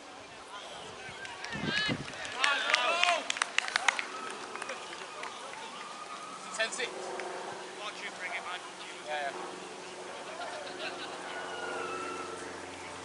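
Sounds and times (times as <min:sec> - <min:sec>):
sharp claps: 0:01.2 - 0:06.2
people shouting: 0:11.1 - 0:12.6.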